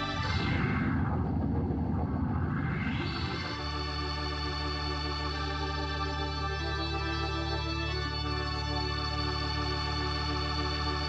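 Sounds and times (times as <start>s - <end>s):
low rumbling whoosh: 0.0s - 3.6s
organ music: 0.0s - 11.0s.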